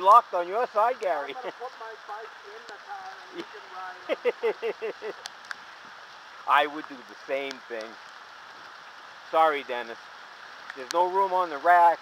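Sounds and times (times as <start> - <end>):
bicycle tyres on wet pavement: 0.0 - 12.0
rain hissing: 0.0 - 12.0.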